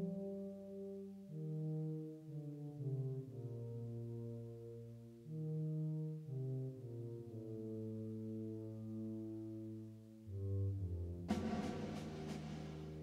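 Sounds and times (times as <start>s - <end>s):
low brass sustained chords: 0.0s - 13.0s.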